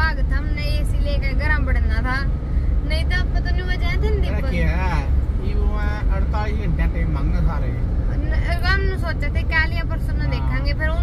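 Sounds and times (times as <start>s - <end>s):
woman talking: 0.0s - 4.6s, 8.1s - 11.0s
car road and engine rumble: 0.0s - 11.0s.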